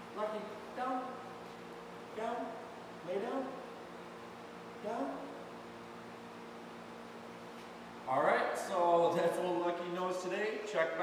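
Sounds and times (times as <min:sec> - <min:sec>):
steady low hum: 0:00.0 - 0:11.0
man speaking: 0:00.1 - 0:01.3, 0:02.1 - 0:03.6, 0:04.8 - 0:05.4, 0:08.1 - 0:11.0.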